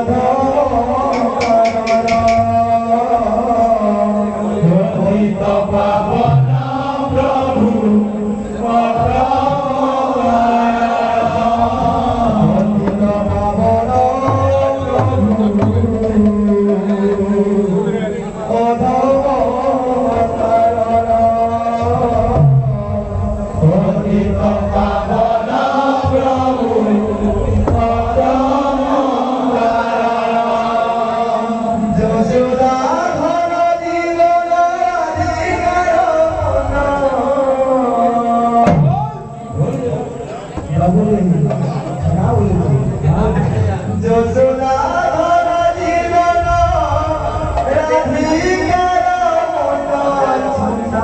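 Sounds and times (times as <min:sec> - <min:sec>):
hand drums: 0:00.0 - 0:02.7, 0:11.2 - 0:17.9, 0:38.6 - 0:39.8, 0:41.4 - 0:43.7, 0:46.5 - 0:48.8
hand-played barrel drums: 0:00.0 - 0:30.6, 0:38.5 - 0:51.0
men chanting in chorus: 0:00.0 - 0:51.0.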